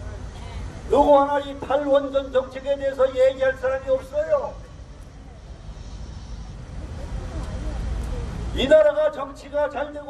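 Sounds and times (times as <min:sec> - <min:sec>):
city background rumble: 0:00.0 - 0:10.0
faint voices: 0:03.8 - 0:08.6.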